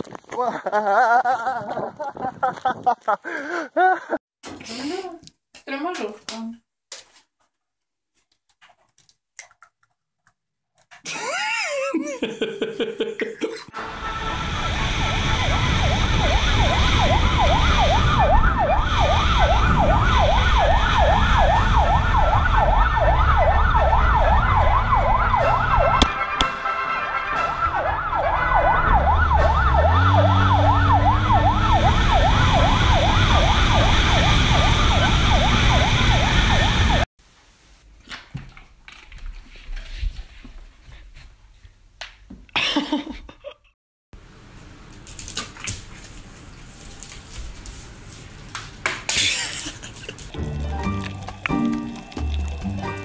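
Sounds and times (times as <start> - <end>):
siren yelping: 14.4 - 26.6, 27.2 - 37.1
car engines: 28.4 - 36.9
engine revving: 28.6 - 36.9.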